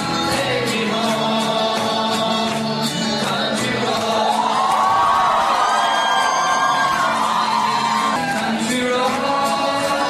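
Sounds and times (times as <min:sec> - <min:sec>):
people clapping: 0:00.0 - 0:10.0
crowd cheering and whooping: 0:04.0 - 0:09.1.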